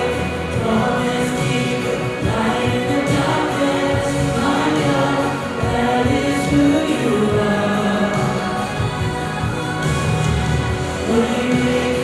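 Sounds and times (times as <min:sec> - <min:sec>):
women singing a worship song: 0:00.0 - 0:12.0.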